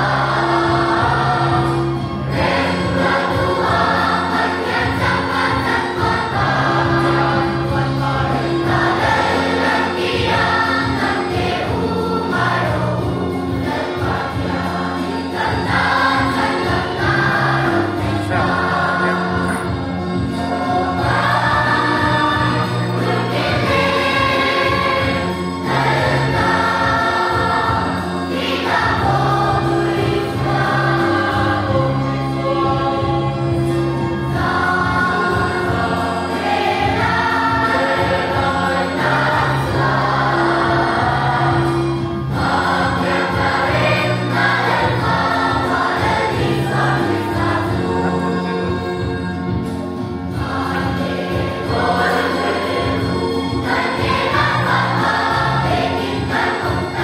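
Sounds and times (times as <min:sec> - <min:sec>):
children's choir singing: 0:00.0 - 0:57.0.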